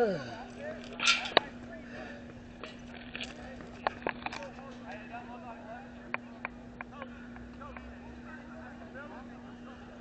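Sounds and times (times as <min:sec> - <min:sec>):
spectators' voices: 0:00.0 - 0:10.0
steady hum: 0:00.0 - 0:10.0.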